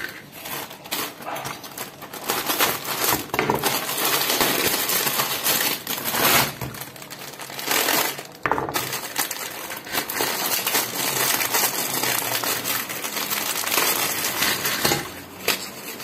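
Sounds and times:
dry food block crumbling: 0.0 - 16.0.

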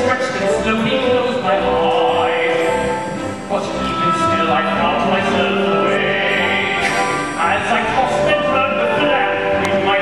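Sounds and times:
man singing baritone: 0.0 - 10.0
orchestra accompaniment: 0.0 - 10.0.

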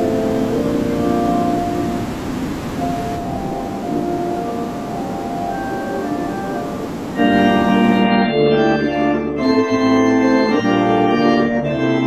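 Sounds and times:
organ playing held chords: 0.0 - 12.0.

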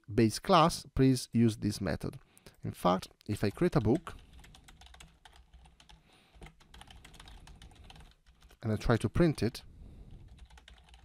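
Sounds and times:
keyboard typing: 3.3 - 8.6, 10.1 - 11.0.

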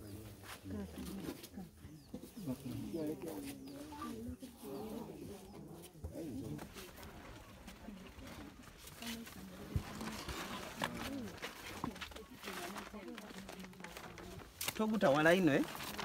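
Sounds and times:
people talking quietly: 0.0 - 16.0.

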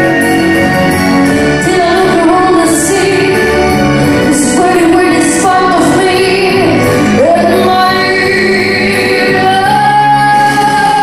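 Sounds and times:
amplified backing track: 0.0 - 11.0
person singing pop song: 0.0 - 11.0.

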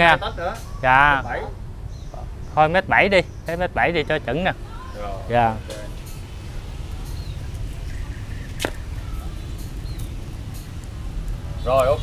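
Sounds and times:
steady low rumble: 0.0 - 12.0
tape measure blade snapping: 8.6 - 8.8.

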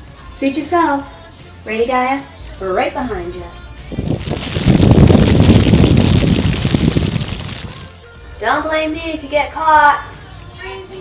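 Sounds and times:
rushing wind-like whoosh: 3.8 - 7.9.

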